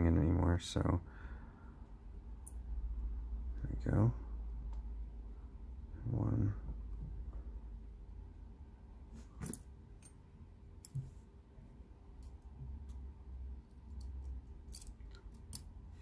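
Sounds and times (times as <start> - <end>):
small metallic clicks: 13.7 - 15.7.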